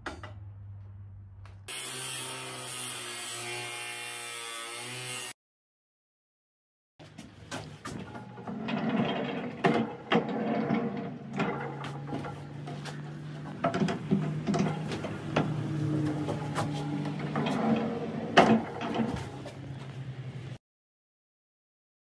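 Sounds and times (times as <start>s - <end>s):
sliding barn door rolling: 7.7s - 19.8s.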